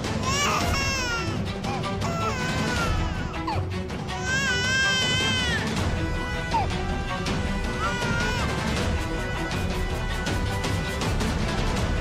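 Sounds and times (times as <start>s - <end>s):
background music: 0.0s - 12.0s
infant crying: 0.1s - 10.4s.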